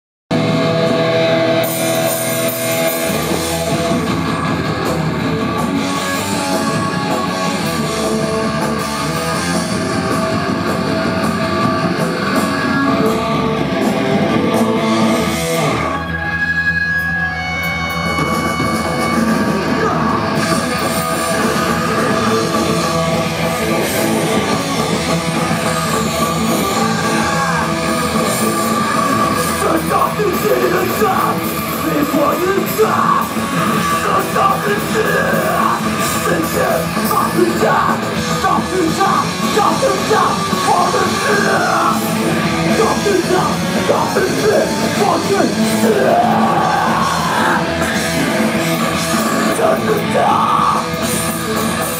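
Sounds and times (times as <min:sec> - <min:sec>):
drum kit: 0:00.3 - 0:16.2, 0:17.5 - 0:51.9
bass guitar: 0:00.3 - 0:51.9
punk band playing: 0:00.3 - 0:51.9.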